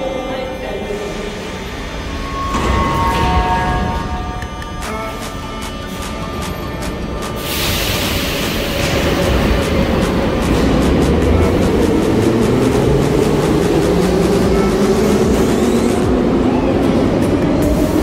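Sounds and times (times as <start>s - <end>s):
train rumble with motor hum: 4.4s - 18.0s.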